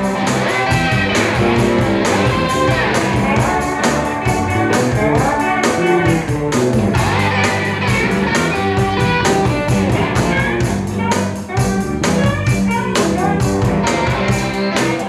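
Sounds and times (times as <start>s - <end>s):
bass line: 0.0s - 15.0s
drum beat: 0.0s - 15.0s
electric guitar bending notes: 0.0s - 15.0s.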